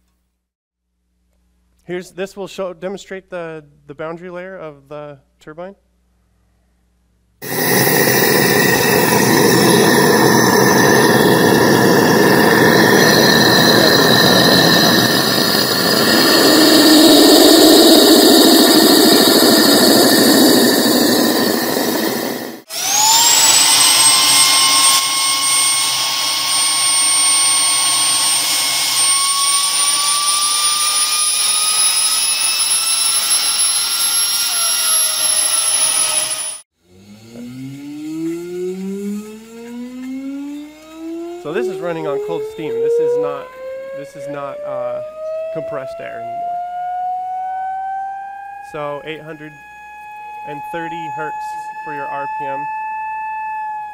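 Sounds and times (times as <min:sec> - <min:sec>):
turbine high whine: 0:07.4 - 0:53.9.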